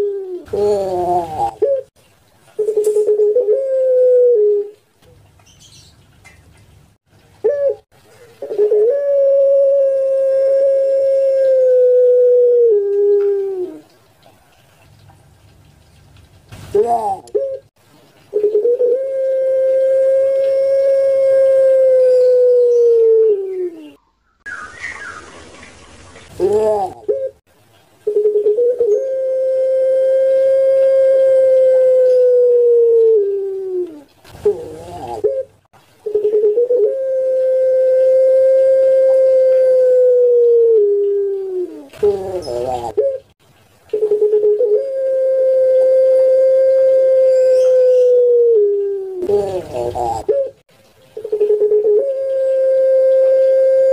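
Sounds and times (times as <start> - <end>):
dove cooing: 0.0 - 1.9, 2.6 - 4.8, 7.4 - 14.0, 16.7 - 17.7, 18.3 - 24.0, 26.3 - 27.4, 28.0 - 53.9.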